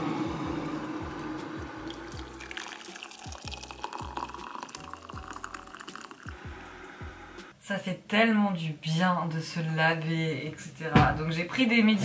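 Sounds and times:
hot water pouring into a mug: 0:00.0 - 0:06.4
background music with bass: 0:00.0 - 0:07.5.

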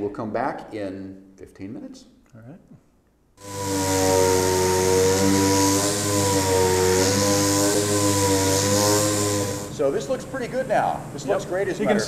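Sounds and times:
air sander running: 0:03.4 - 0:11.1.

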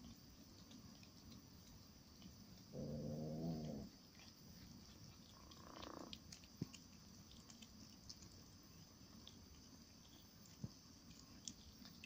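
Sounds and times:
cat growling: 0:02.7 - 0:06.2.

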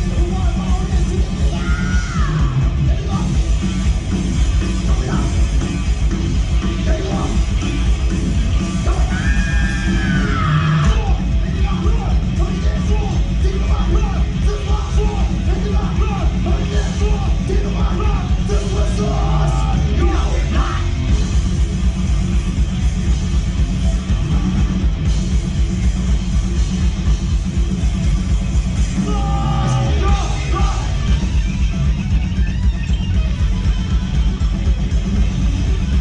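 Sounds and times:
drums: 0:00.0 - 0:36.0
rock band playing live: 0:00.0 - 0:36.0
shouted vocals: 0:01.2 - 0:03.3, 0:08.8 - 0:21.0, 0:29.0 - 0:31.1.

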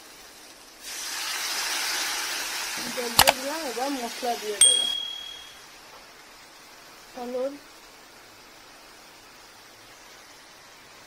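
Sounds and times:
food sizzling in oil: 0:00.1 - 0:05.0.

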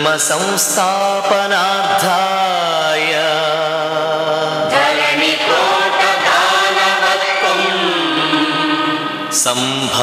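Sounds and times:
person singing chanted verse: 0:00.0 - 0:10.0.

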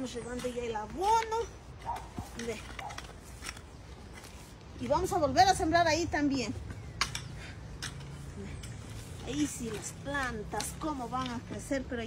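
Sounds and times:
hoe chopping and scraping soil: 0:00.0 - 0:05.7, 0:06.7 - 0:12.0.

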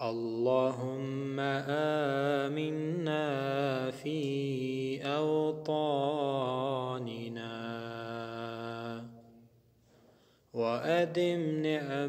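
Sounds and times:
man chanting melodically: 0:00.0 - 0:09.1, 0:10.6 - 0:12.0.

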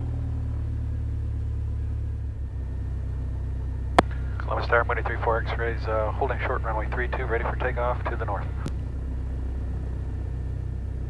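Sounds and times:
airplane engine idling: 0:00.0 - 0:11.0.

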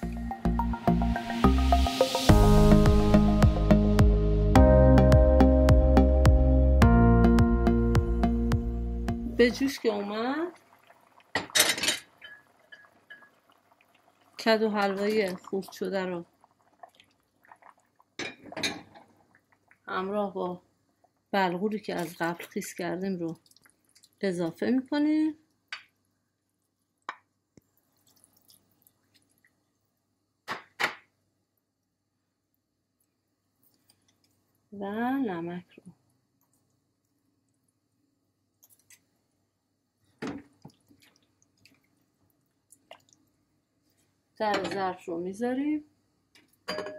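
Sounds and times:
broth bubbling in a pot: 0:09.4 - 0:25.7, 0:40.1 - 0:44.1
faint splashing: 0:09.4 - 0:25.7, 0:27.6 - 0:30.1, 0:40.4 - 0:44.1.

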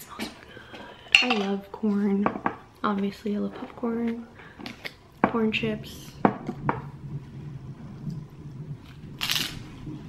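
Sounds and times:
glass jar clinking: 0:01.1 - 0:01.6.

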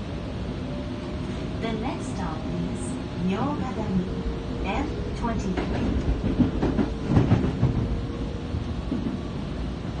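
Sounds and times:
train wheels rumbling on rail: 0:00.0 - 0:10.0.

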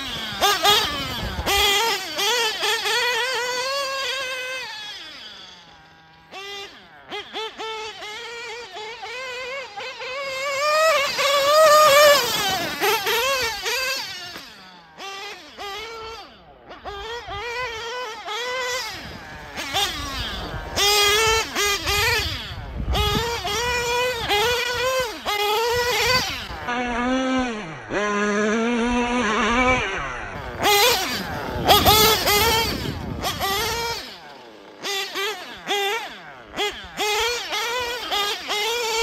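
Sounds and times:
small engine revving high whine: 0:00.0 - 0:39.0.

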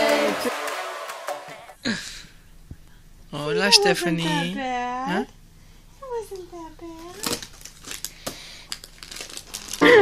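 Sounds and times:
string music: 0:00.0 - 0:01.8.

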